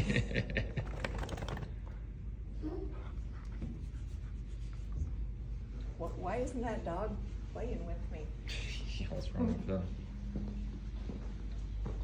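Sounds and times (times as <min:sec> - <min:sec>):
person laughing: 0:00.0 - 0:01.0.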